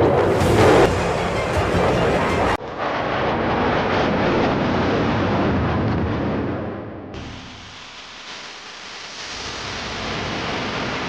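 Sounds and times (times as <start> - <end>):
jet engine rush: 0.0 - 11.0.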